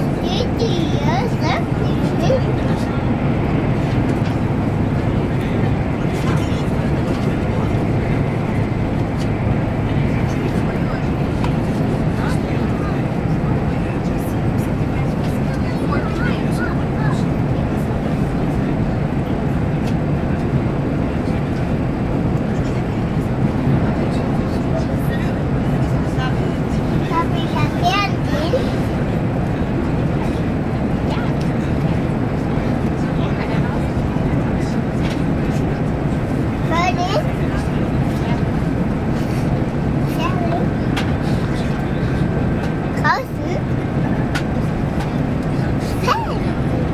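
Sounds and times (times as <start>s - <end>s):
faint voices: 0.0s - 46.9s
train rumble inside carriage: 0.0s - 46.9s.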